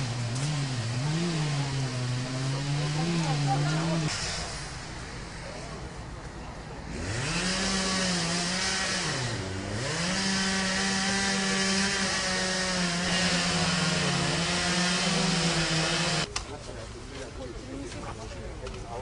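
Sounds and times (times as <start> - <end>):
chainsaw revving: 0.0 - 5.2, 6.9 - 16.3.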